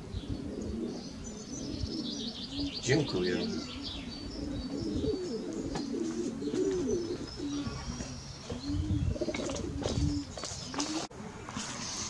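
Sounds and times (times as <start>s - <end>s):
pigeons cooing: 0.0s - 12.0s
small birds chirping: 0.0s - 12.0s.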